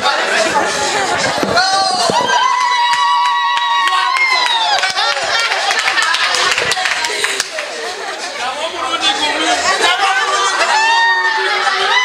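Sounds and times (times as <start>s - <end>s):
crowd chattering and calling out: 0.0s - 12.0s
hand claps: 2.5s - 7.8s.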